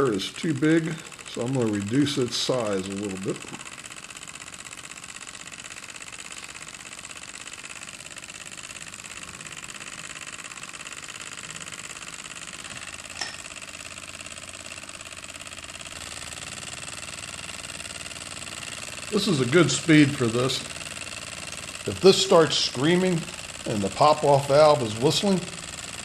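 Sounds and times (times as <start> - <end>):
mini steam engine running: 0.0 - 26.0.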